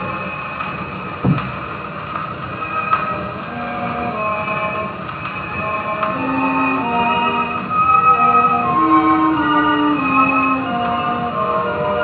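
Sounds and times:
orchestra on old record: 0.0s - 12.0s
record surface hiss: 0.0s - 12.0s.

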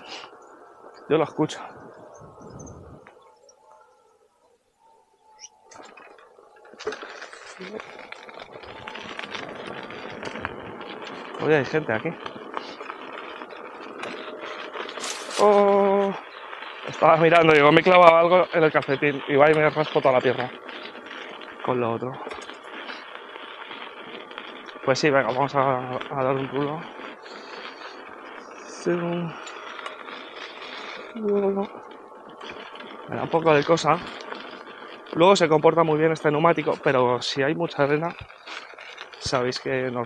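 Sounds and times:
tyre crunching over gravel: 4.8s - 40.0s.

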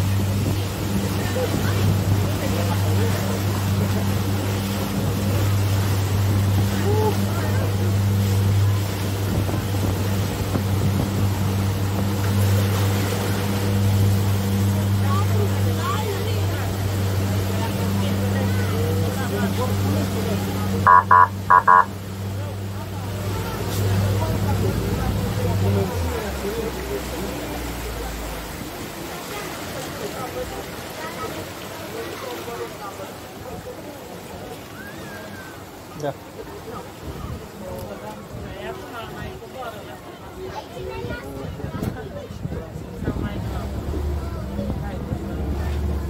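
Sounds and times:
wake rushing past hull: 0.0s - 39.5s, 40.4s - 46.0s
boat engine humming: 0.0s - 46.0s
short high beeps: 20.9s - 21.9s.

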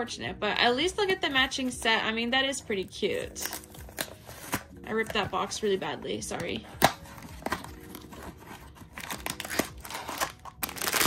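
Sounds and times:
plastic bag crinkling and tearing: 8.9s - 11.0s.

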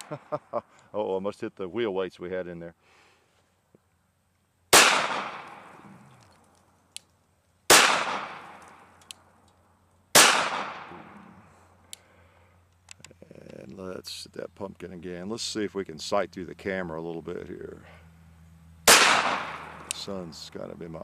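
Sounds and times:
pistol shots echoing: 4.7s - 5.8s, 7.7s - 8.9s, 10.1s - 11.1s, 18.9s - 20.0s.

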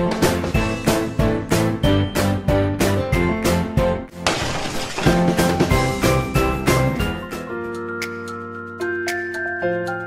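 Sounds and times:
upbeat background music: 0.0s - 4.2s, 4.8s - 10.0s
glass shattering: 4.2s - 5.8s.

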